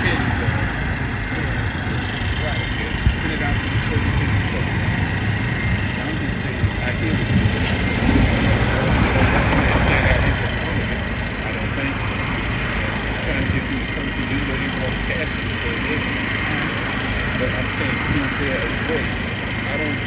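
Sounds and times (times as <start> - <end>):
people talking: 0.0 - 4.7, 5.9 - 12.1, 13.2 - 20.0
road traffic noise: 0.0 - 20.0.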